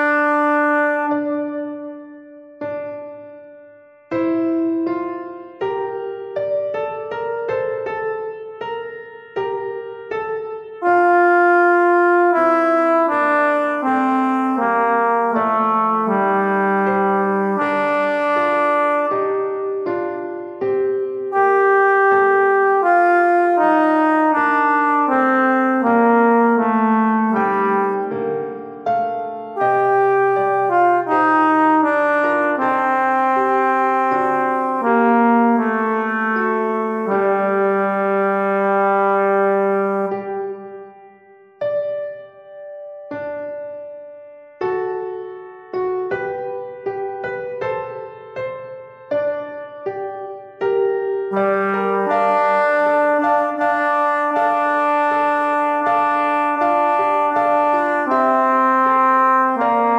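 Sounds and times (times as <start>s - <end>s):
synthesized brass-like melody: 0.0s - 3.0s, 10.8s - 19.9s, 21.3s - 41.0s, 51.3s - 59.9s.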